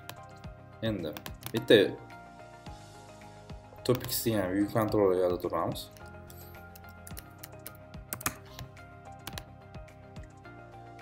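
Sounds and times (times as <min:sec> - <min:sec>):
background music: 0:00.0 - 0:11.0
computer keyboard keys clicking: 0:01.1 - 0:01.6, 0:03.9 - 0:04.2, 0:05.9 - 0:09.5.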